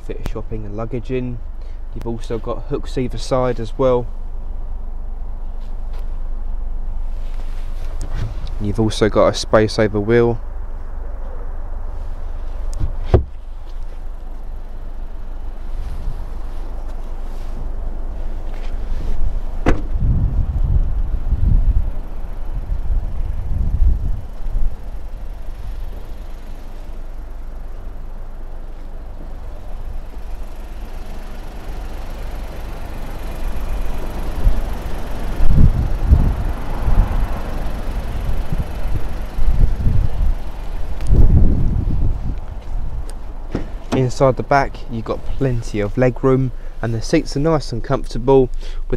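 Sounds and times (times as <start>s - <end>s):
wind buffeting microphone: 19.1s - 26.4s, 34.0s - 44.1s
sharp knock: 19.6s - 20.0s.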